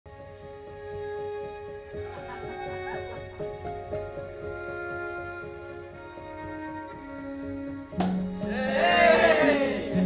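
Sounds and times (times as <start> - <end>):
soft sustained background music: 0.1 - 10.0.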